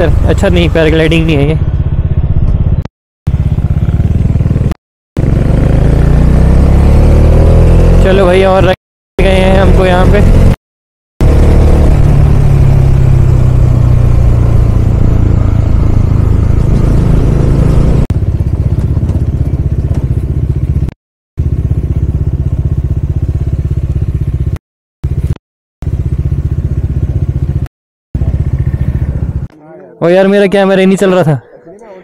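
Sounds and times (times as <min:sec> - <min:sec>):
motorcycle engine running: 0:00.0 - 0:10.6, 0:11.2 - 0:29.7.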